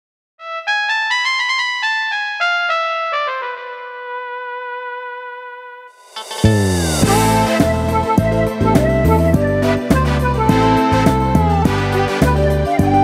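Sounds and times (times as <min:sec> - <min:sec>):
keyboard melody: 0:00.4 - 0:13.0.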